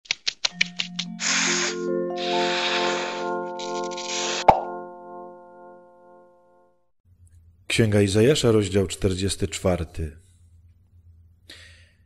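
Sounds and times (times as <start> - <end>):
ringing chord: 0.6 - 6.9
hissing swish: 1.2 - 4.5.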